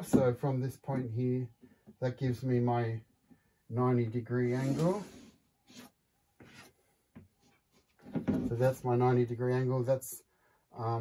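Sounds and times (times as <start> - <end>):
chalk scratching on chalkboard: 4.5 - 6.7.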